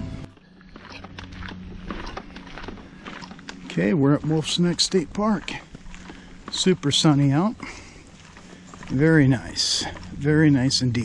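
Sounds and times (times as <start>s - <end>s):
footsteps on a path: 0.0s - 11.0s.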